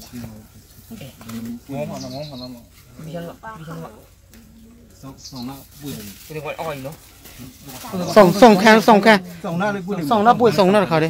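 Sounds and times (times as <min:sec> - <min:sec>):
high bird twitter: 0:01.9 - 0:02.7, 0:05.1 - 0:05.7.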